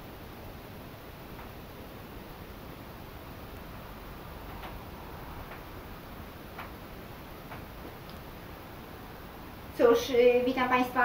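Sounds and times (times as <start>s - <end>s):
room hiss: 0.0s - 11.0s
soft taps: 7.5s - 8.2s.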